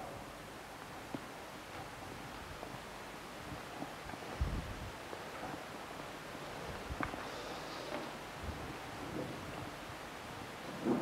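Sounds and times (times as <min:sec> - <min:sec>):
room tone and hiss: 0:00.0 - 0:11.0
breath: 0:07.2 - 0:08.2.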